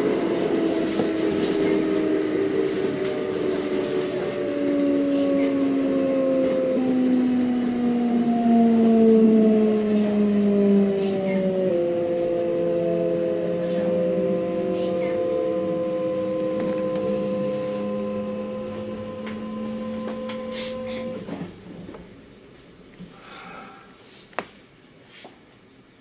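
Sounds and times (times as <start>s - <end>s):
electric train motors whining: 0.0s - 22.4s
low rumble: 0.0s - 22.5s.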